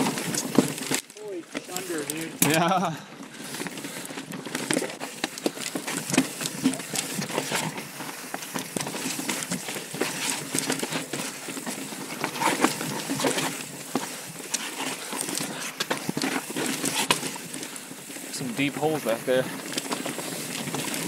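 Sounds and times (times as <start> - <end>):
bike knocks and rattles: 0.0 - 18.2
tyres crunching over rock: 0.0 - 21.0.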